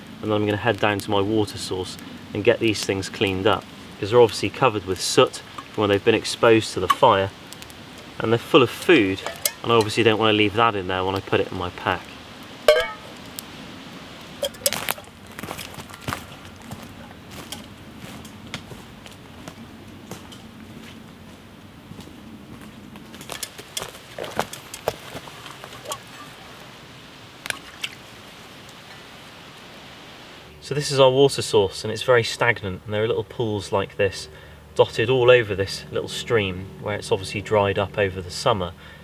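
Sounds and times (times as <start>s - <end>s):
pots clinking: 9.1s - 10.0s, 12.7s - 13.1s, 14.4s - 15.1s, 23.4s - 26.5s
footsteps on dry leaves: 14.6s - 25.9s.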